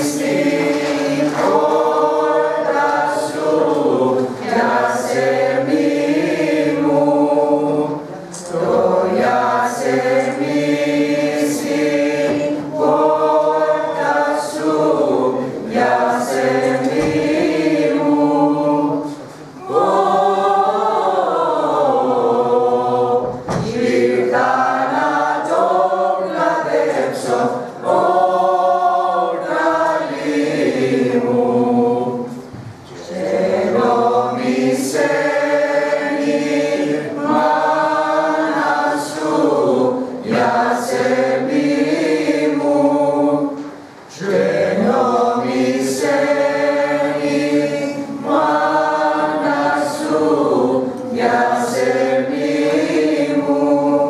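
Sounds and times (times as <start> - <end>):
mixed choir singing unaccompanied: 0.0 - 54.0.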